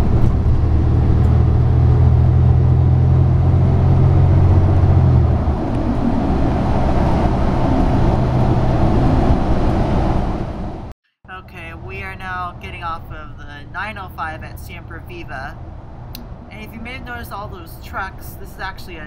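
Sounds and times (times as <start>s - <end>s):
bus engine droning: 0.0s - 19.0s
tyres and road noise: 0.0s - 19.0s.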